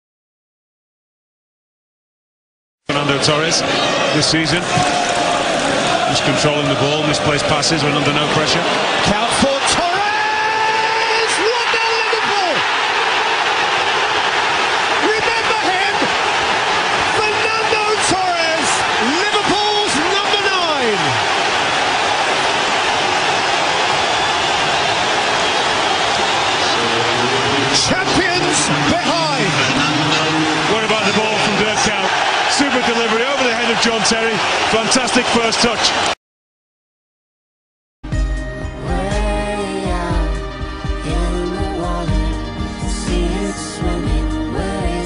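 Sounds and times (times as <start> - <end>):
crowd shouts and voices: 2.9 - 36.2
stadium crowd roar: 2.9 - 36.2.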